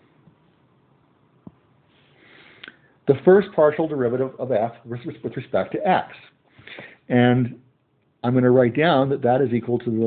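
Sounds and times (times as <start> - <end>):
short in-breath: 2.0 - 3.0, 6.5 - 7.1.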